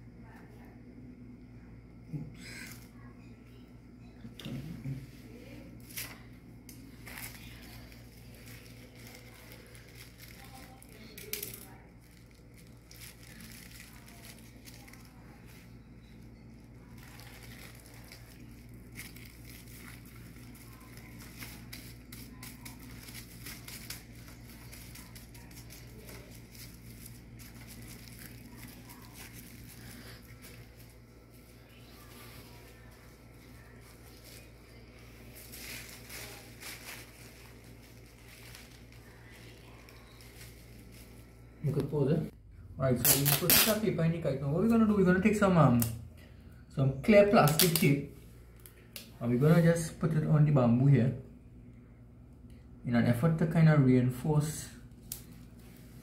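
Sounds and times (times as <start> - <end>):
steady low hum: 0.0 - 56.0
plastic sheeting rustling: 4.6 - 42.4.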